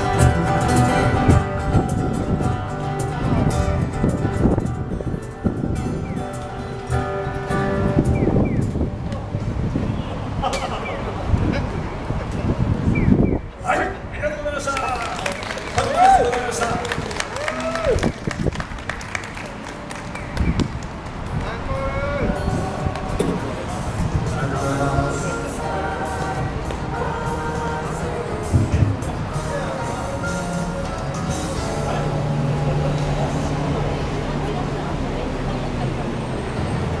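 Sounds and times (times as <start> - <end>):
faint voices: 0.0 - 37.0
low traffic rumble: 0.0 - 37.0
scattered hand clapping: 14.7 - 21.6.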